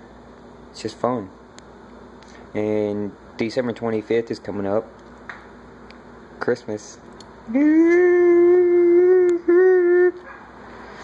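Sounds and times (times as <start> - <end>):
loud vocal howl: 7.5 - 10.4.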